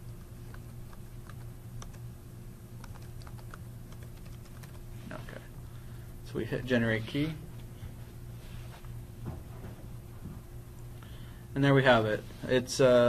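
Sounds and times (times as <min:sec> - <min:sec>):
steady low hum: 0:00.0 - 0:13.0
keyboard keystrokes clicking: 0:02.8 - 0:04.8.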